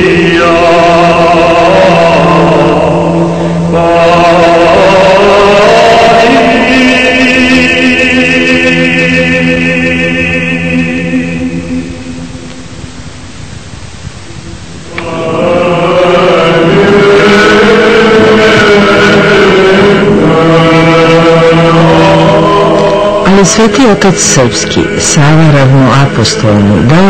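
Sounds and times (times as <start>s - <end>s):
choir chanting: 0.0s - 12.5s, 14.8s - 27.0s
steady low drone: 0.0s - 27.0s.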